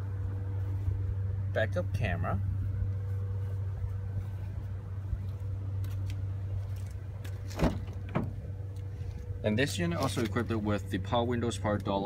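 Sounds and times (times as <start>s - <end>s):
steady low hum: 0.0s - 12.0s
car door knocks: 7.5s - 8.4s.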